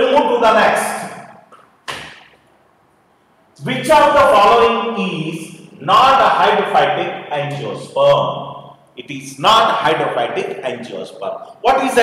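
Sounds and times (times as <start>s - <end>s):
sharp thump: 1.9s - 2.4s.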